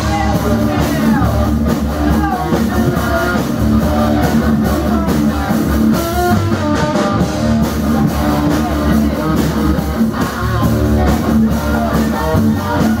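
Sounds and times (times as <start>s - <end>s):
bass guitar: 0.0s - 13.0s
drum kit: 0.0s - 13.0s
electric guitar: 0.0s - 13.0s.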